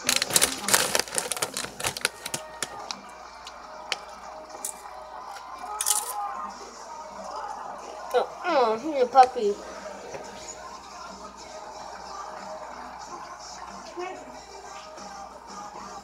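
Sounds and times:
background music: 0.0s - 16.0s
faint background voices: 0.0s - 16.0s.

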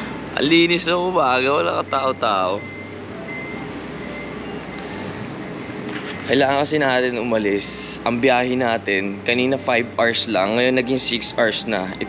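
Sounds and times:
city street noise: 0.0s - 12.0s
faint music with held notes: 0.0s - 12.0s.

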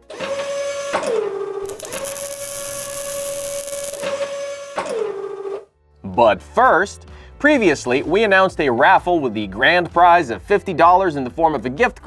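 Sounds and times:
hissing noise: 1.6s - 4.1s
robot arm motor whine: 1.6s - 4.8s.

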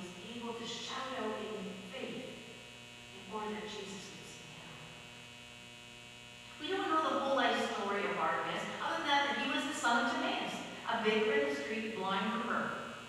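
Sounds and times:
electrical mains hum: 0.0s - 13.0s
person speaking: 6.6s - 12.7s.

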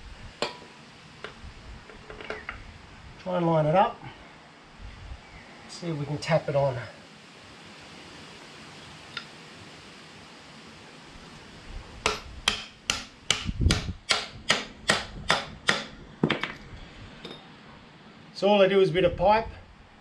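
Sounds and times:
mallet tapping metal pipe: 12.0s - 15.9s.

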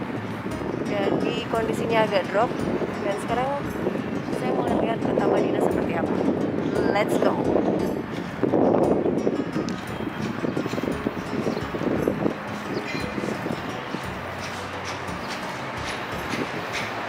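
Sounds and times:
street ambience: 0.0s - 17.0s
footsteps on stone paving: 12.3s - 17.0s.

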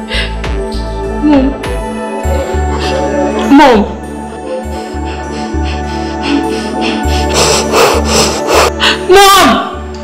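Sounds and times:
soft background music: 0.0s - 10.0s
rasping rubbing sound: 5.1s - 8.7s.

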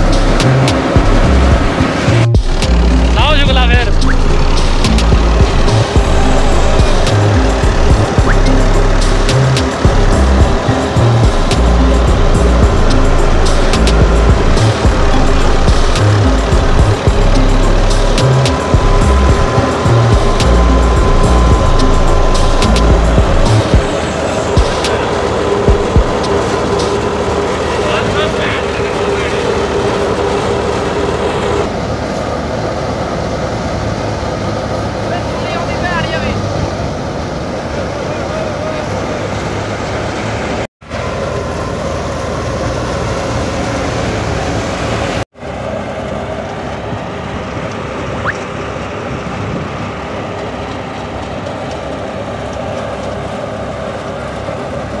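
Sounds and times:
thresher machine drone: 0.0s - 55.0s
tractor engine: 0.0s - 55.0s.

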